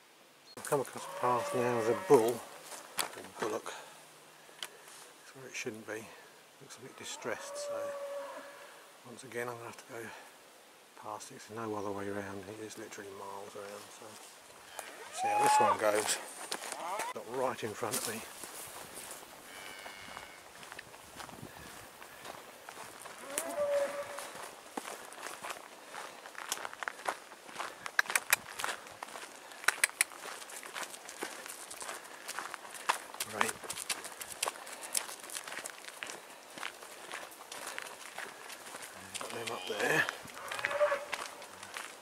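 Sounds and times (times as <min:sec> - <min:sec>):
footsteps crunching on gravel: 0:00.6 - 0:03.9, 0:13.6 - 0:42.0
cow mooing: 0:01.0 - 0:02.4, 0:07.1 - 0:08.7, 0:15.1 - 0:15.9, 0:23.2 - 0:24.3, 0:39.3 - 0:41.2.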